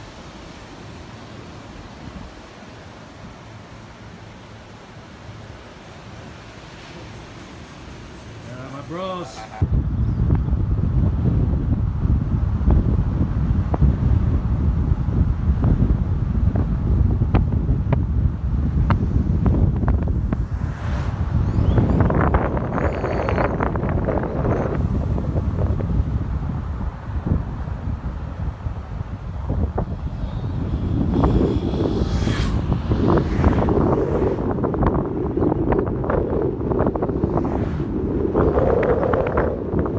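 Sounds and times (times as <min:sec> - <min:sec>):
car road noise: 0:00.0 - 0:39.9
wind buffeting microphone: 0:04.1 - 0:39.9.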